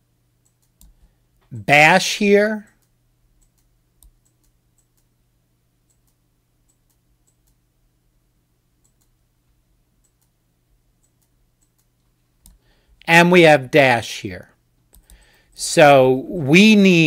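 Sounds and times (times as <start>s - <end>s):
low steady hum: 0.0s - 17.0s
computer mouse clicks: 0.4s - 1.2s, 2.7s - 5.1s, 5.8s - 7.6s, 8.8s - 9.2s, 10.0s - 10.4s, 11.0s - 12.6s, 14.9s - 15.4s.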